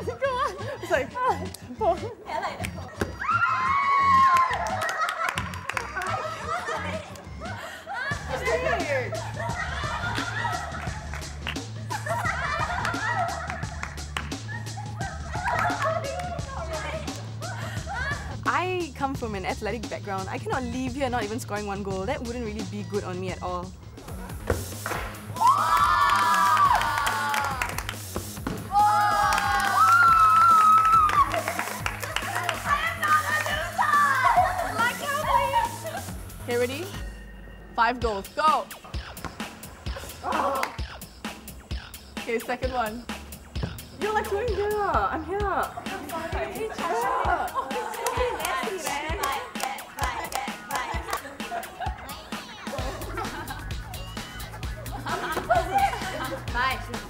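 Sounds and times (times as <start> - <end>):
young women laughing and giggling: 0.0 - 18.5, 28.7 - 36.5, 44.0 - 57.0
background music with pulsing beat: 0.0 - 57.0
women shrieking: 3.2 - 4.9, 25.4 - 27.6, 28.7 - 31.4, 32.7 - 34.7.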